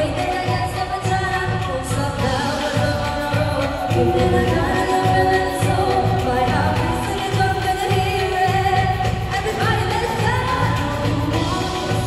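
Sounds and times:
women singing into microphones: 0:00.0 - 0:12.0.

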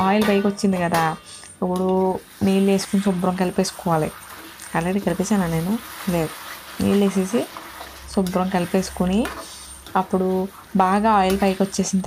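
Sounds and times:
woman speaking: 0:00.0 - 0:07.5, 0:08.1 - 0:12.0.

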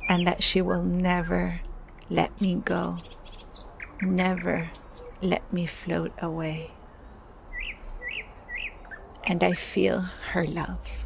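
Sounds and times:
bird chirping: 0:00.0 - 0:01.6, 0:02.4 - 0:10.7.

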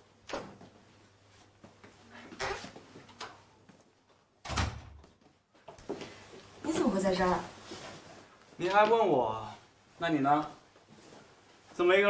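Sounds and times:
door shutting with heavy thud: 0:04.4 - 0:05.0.

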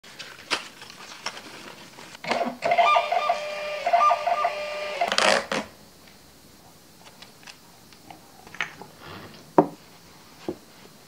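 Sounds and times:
paper rustle: 0:00.0 - 0:02.2
printer motor whine: 0:02.2 - 0:05.4.

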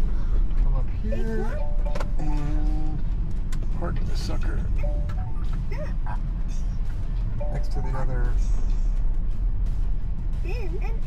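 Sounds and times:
car road rumble: 0:00.0 - 0:11.0.

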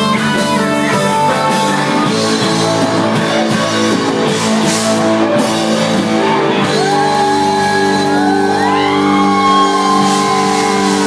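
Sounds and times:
sliding high notes: 0:01.2 - 0:11.0.

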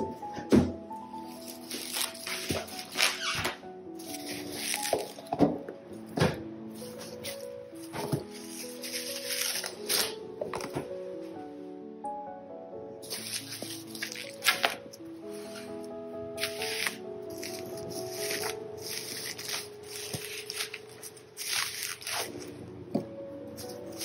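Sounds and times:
solo piano melody: 0:00.0 - 0:24.0
bubble wrap crinkling: 0:01.0 - 0:05.4, 0:06.7 - 0:10.9, 0:13.0 - 0:22.8, 0:23.4 - 0:24.0.

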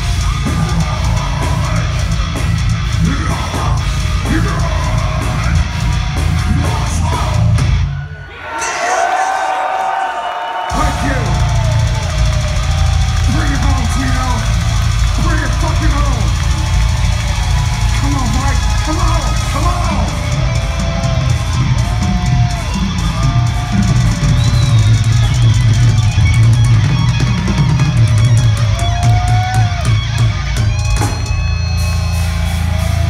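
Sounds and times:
metal band playing live: 0:00.0 - 0:09.4, 0:10.7 - 0:33.0.

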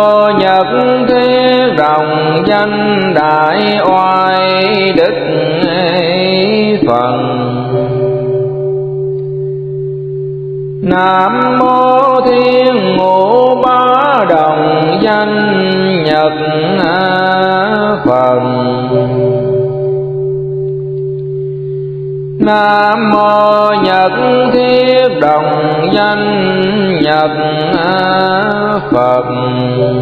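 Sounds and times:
voice chanting: 0:00.0 - 0:08.7, 0:10.8 - 0:20.2, 0:22.4 - 0:30.0
steady ringing tone: 0:00.0 - 0:30.0.

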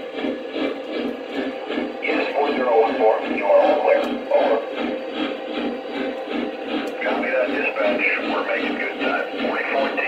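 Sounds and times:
model steam locomotive sounds: 0:00.0 - 0:10.0.

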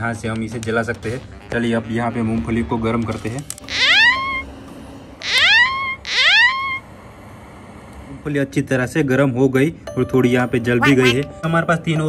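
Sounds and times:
rising whooping tone: 0:05.2 - 0:06.8.

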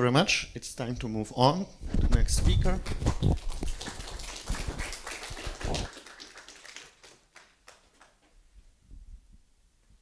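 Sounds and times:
audience applause: 0:03.4 - 0:08.2.

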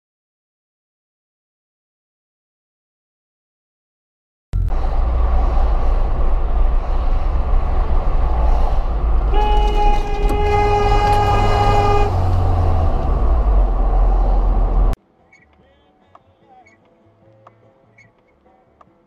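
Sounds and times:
loud low rumble: 0:04.6 - 0:15.0
vehicle horn blast: 0:09.2 - 0:13.3.

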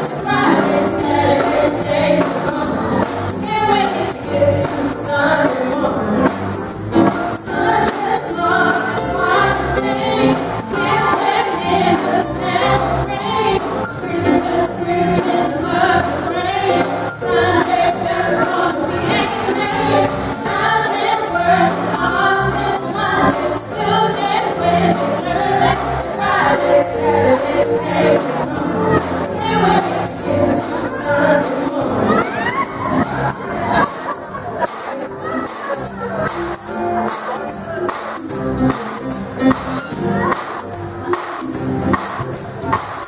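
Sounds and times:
group singing gospel song: 0:00.0 - 0:36.3
rhythmic accompaniment: 0:00.0 - 0:43.0
tambourine shaken: 0:00.0 - 0:43.0.

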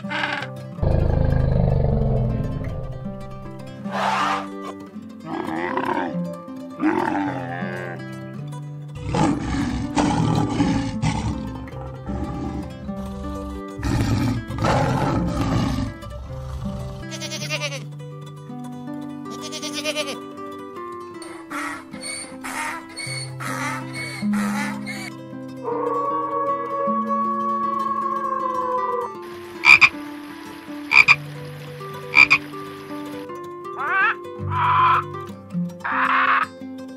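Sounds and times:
frog croaking: 0:00.0 - 0:03.7, 0:25.7 - 0:30.1, 0:30.8 - 0:32.6, 0:33.8 - 0:35.2, 0:35.8 - 0:36.5
background music: 0:00.0 - 0:36.9
large animal rough call: 0:00.1 - 0:04.7, 0:09.0 - 0:17.3, 0:25.6 - 0:30.0
harsh bird calls: 0:21.2 - 0:25.1, 0:29.3 - 0:30.0, 0:30.8 - 0:31.2, 0:32.1 - 0:32.6, 0:33.8 - 0:35.2, 0:35.9 - 0:36.5
falling howl: 0:25.6 - 0:29.2.

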